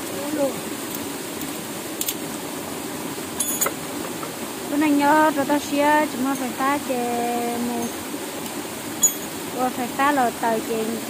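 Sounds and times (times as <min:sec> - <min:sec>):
water flowing: 0:00.0 - 0:11.0.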